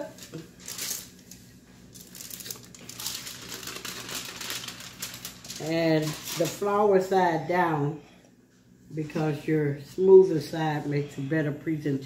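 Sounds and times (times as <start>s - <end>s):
aluminium foil crinkling: 0.0s - 7.1s.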